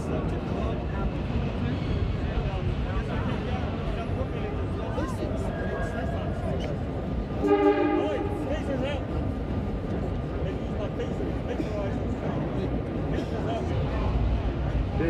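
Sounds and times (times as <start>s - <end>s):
subway train rumbling: 0.0s - 15.0s
train horn blast: 7.4s - 8.7s.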